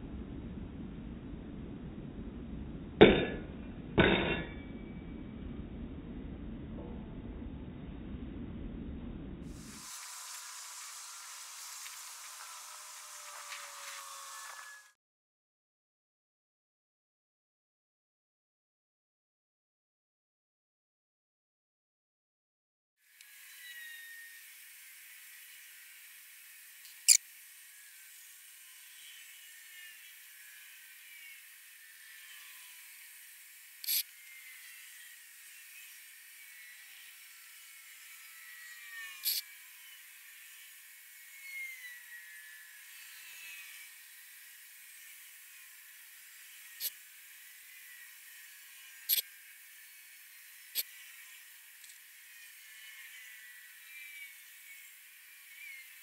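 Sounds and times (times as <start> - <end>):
faint steady hiss: 9.5 - 14.9, 23.1 - 38.3.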